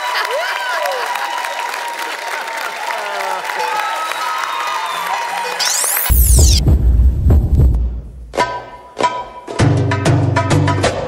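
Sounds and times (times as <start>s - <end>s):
high sweeping whoosh: 5.6s - 7.1s
deep bass throb: 6.1s - 8.4s.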